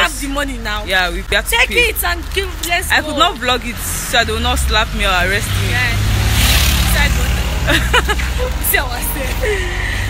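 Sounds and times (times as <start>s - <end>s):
low engine rumble: 0.0s - 10.0s
woman laughing: 7.4s - 10.0s.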